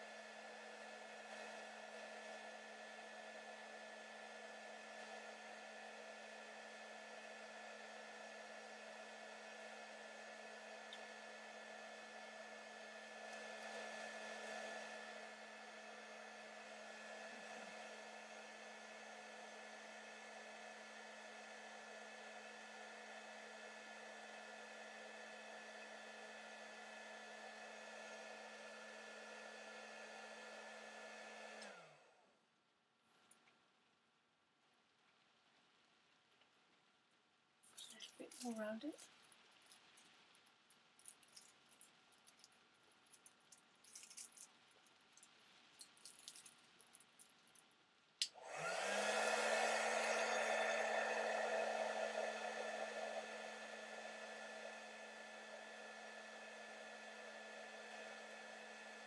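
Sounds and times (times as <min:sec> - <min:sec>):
heat gun blowing: 0:48.2 - 0:59.0
motor spinning down: 0:48.4 - 0:59.0.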